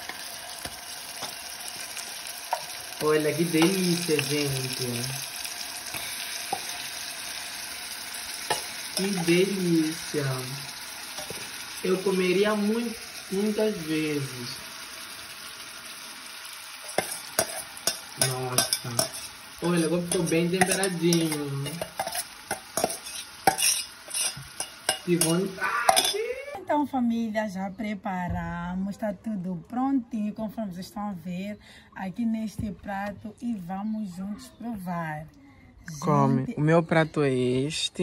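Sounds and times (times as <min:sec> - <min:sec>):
spoon stirring in a pot: 0:00.0 - 0:07.0, 0:08.4 - 0:09.4, 0:11.1 - 0:11.6, 0:16.8 - 0:26.2
chicken and onion sizzling in oil: 0:00.0 - 0:26.5.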